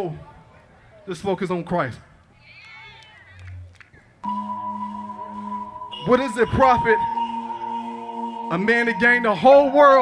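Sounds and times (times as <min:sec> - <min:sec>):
instrumental rap backing track: 0:04.2 - 0:10.0.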